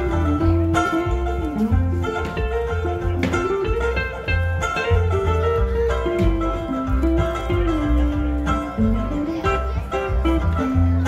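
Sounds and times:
electric guitar: 0.0 - 11.0
mandolin: 0.0 - 11.0
plucked double bass: 0.0 - 11.0.

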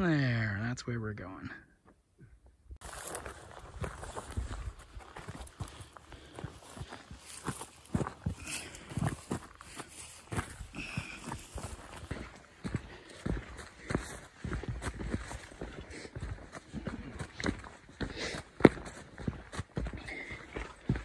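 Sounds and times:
footsteps crunching on gravel: 2.8 - 21.0.

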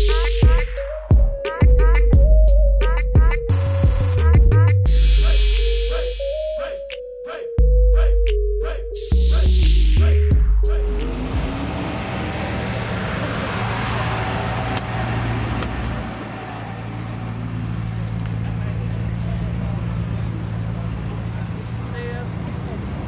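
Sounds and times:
car engine at low revs: 10.5 - 23.0.

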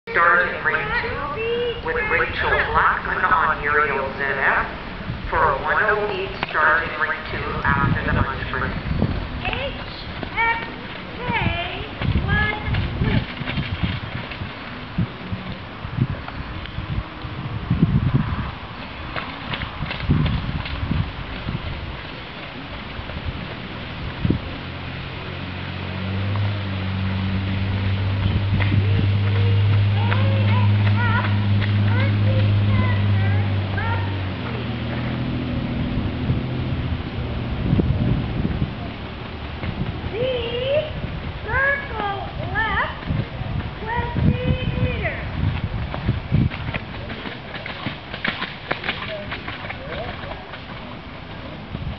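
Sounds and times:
person talking in high voice: 0.1 - 4.7, 40.1 - 43.0
wind rumble on microphone: 0.1 - 51.9
hoofbeats trotting on sand: 5.7 - 17.3, 18.0 - 35.5, 38.2 - 51.9.

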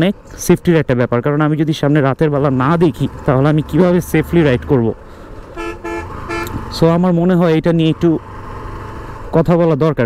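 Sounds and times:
motorcycle horn toots: 5.6 - 6.6.

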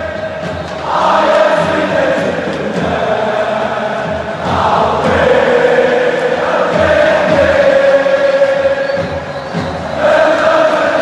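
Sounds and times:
group of voices singing: 0.0 - 11.0
music with low beat: 0.0 - 11.0.

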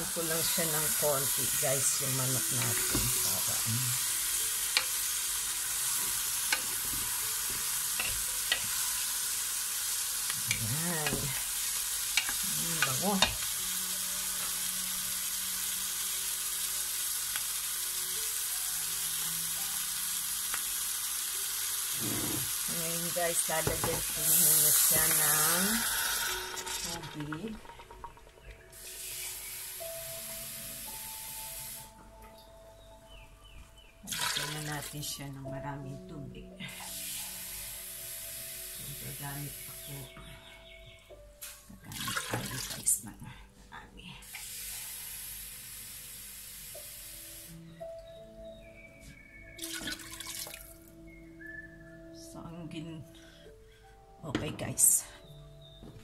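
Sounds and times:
steam hissing: 0.0 - 28.0, 28.8 - 32.0, 36.7 - 40.2, 44.2 - 47.6
water pouring into pot: 0.0 - 31.8, 34.1 - 34.9, 41.9 - 43.0, 49.6 - 50.9
background music with held notes: 0.0 - 56.0.

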